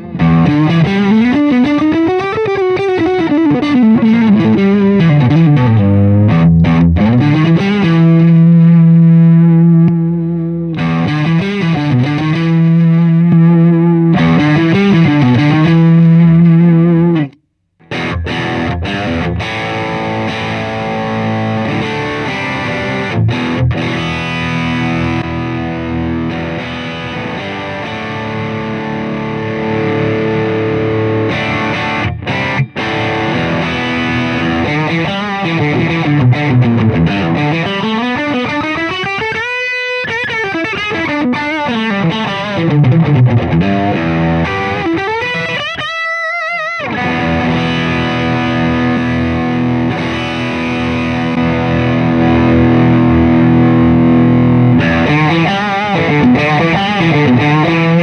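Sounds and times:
overdriven electric guitar: 0.0s - 58.0s.

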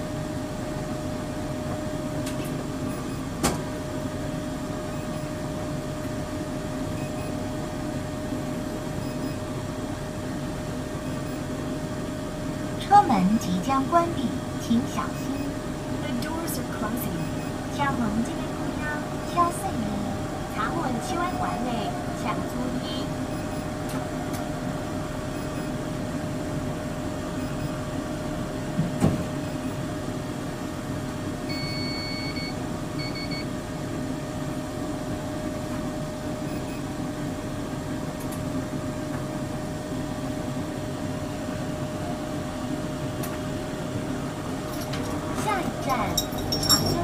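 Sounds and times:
electric train equipment hum: 0.0s - 31.6s
high beeps: 11.0s - 11.4s, 15.1s - 15.6s, 17.0s - 24.0s, 25.3s - 25.9s, 27.4s - 27.8s, 29.4s - 29.8s, 31.5s - 33.5s
constant whining tone: 12.8s - 28.6s.

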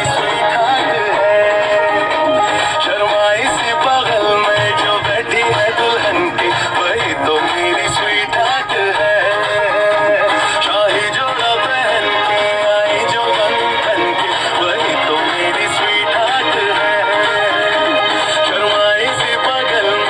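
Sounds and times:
song with singing over instruments: 0.0s - 20.0s.

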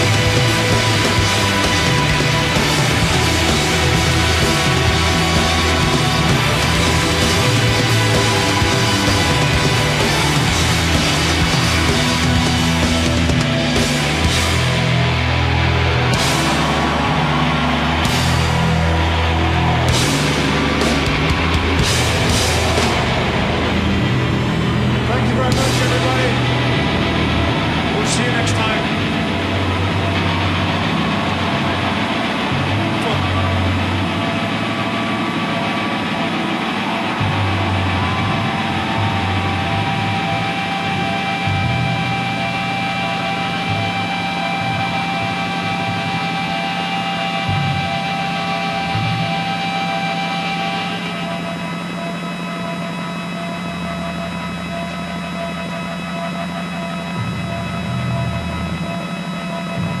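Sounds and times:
live rock band music: 0.0s - 56.2s.

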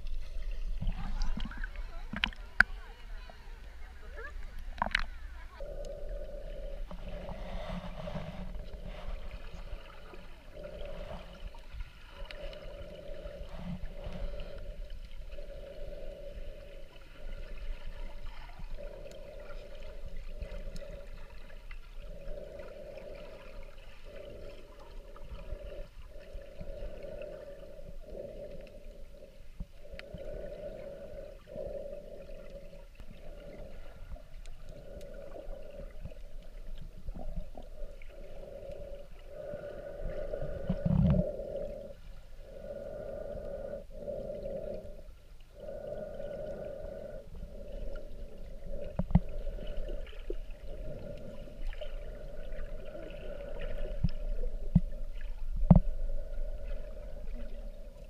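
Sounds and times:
muffled underwater water rumble: 0.0s - 58.0s.

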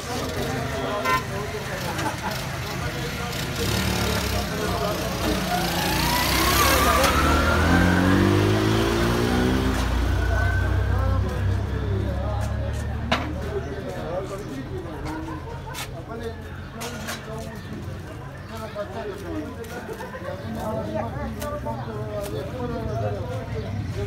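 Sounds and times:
street chatter: 0.0s - 24.0s
vehicle engine passing by: 2.7s - 14.9s.

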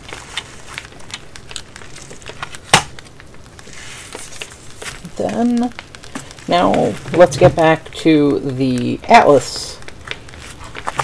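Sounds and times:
packaging clicks and rustles: 0.0s - 11.0s.

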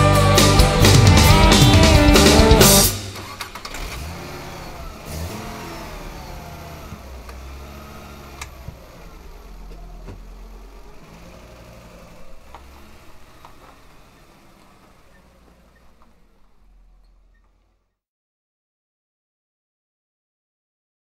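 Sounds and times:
vehicle engine running: 0.0s - 18.0s.

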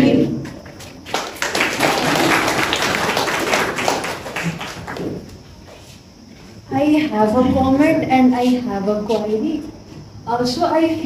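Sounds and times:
audience applauding: 1.0s - 5.4s.

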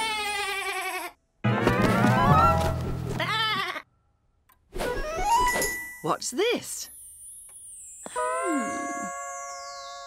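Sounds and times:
cartoon lamb bleating: 3.2s - 3.9s.

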